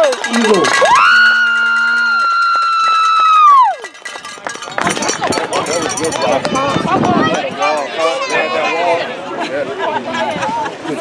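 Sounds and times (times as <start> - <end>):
voices shouting and cheering: 0.0 - 11.0
high-pitched cheering scream: 0.4 - 4.0.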